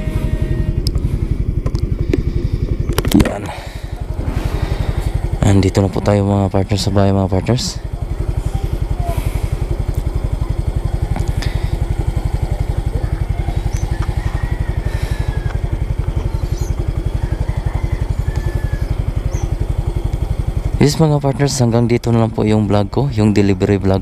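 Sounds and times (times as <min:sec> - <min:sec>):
small motorcycle engine idling: 0:00.0 - 0:24.0.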